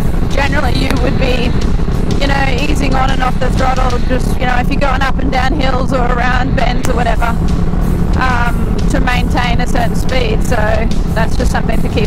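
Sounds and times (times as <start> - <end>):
motorcycle engine rumbling: 0.0 - 12.0
wind noise: 0.0 - 12.0
person speaking: 0.3 - 1.6, 2.2 - 7.4.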